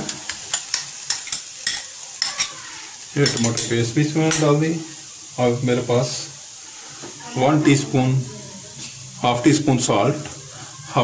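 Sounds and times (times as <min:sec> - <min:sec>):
onion sizzling in hot oil: 0:00.0 - 0:11.0.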